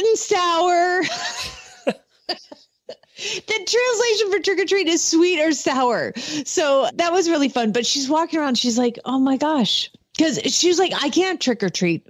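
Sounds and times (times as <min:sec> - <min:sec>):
person laughing: 0:01.0 - 0:03.2.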